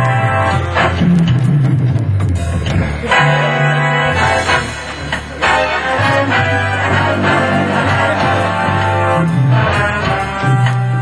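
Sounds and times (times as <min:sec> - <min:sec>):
organ playing: 0:00.0 - 0:01.0, 0:03.0 - 0:11.0
moving bass line: 0:00.0 - 0:11.0.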